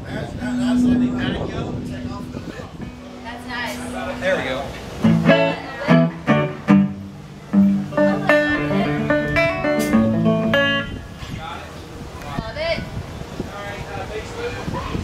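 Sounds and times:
banjo picking: 0.4 - 10.9.

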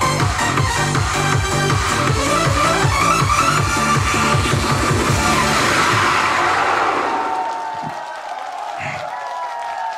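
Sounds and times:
electronic dance backing track: 0.0 - 7.0
crowd cheering: 4.9 - 9.9.

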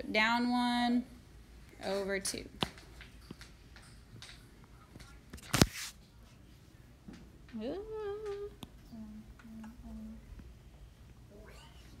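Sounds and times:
woman singing ooh: 7.5 - 10.3
woman humming notes: 7.6 - 10.2.

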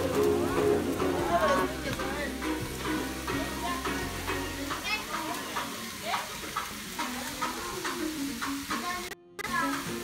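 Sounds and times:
meat sizzling on a grill: 0.0 - 10.0.

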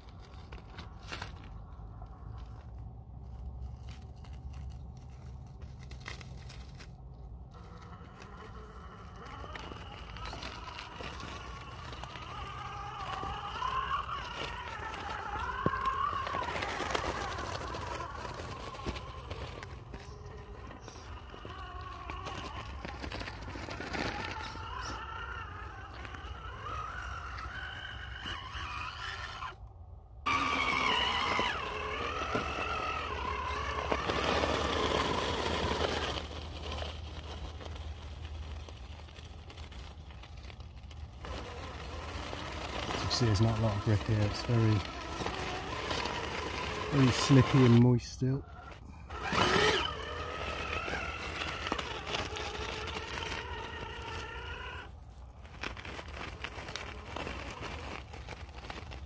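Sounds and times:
tyres scrabbling on stone: 0.0 - 29.6, 30.3 - 59.0
electric motor whining: 7.6 - 29.6, 30.2 - 59.0.

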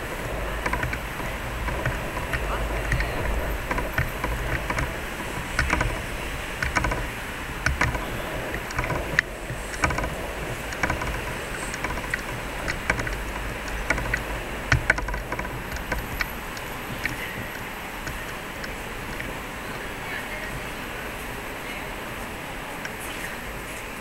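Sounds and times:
footsteps on stone paving: 0.0 - 20.8
city noise: 0.0 - 24.0
wind rumble on microphone: 0.0 - 24.0.

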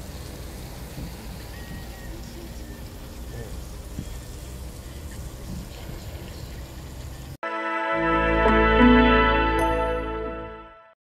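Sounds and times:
car road noise: 0.0 - 7.4.

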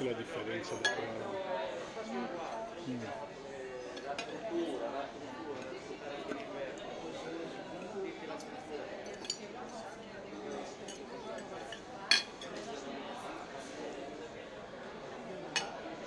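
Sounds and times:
background chatter: 0.0 - 16.0
forks clinking on plates: 9.0 - 9.9, 10.5 - 12.6.

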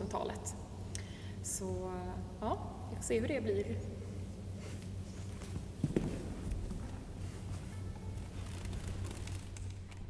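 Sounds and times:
steady low hum: 0.0 - 10.0
footsteps and shuffling: 4.4 - 10.0.

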